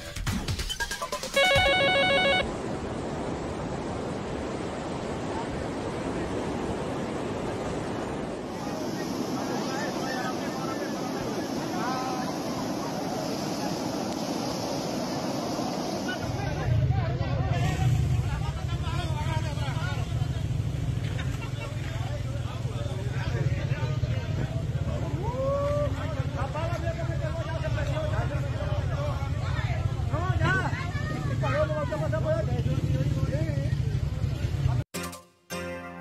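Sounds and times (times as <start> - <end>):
electronic telephone ringer: 1.4 - 2.4
rushing floodwater: 1.7 - 34.7
people talking: 8.5 - 14.2, 16.0 - 34.8.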